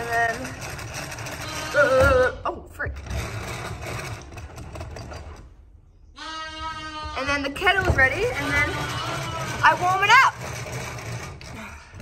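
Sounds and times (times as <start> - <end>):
whisking in a plastic tub: 0.0 - 2.0, 7.6 - 11.7
lamb bleating: 1.4 - 2.1, 6.2 - 7.6, 8.3 - 9.8.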